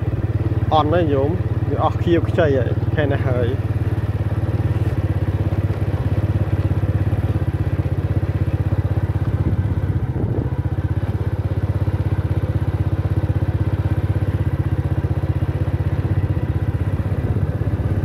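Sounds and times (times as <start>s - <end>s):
motorcycle engine running steadily: 0.0s - 18.0s.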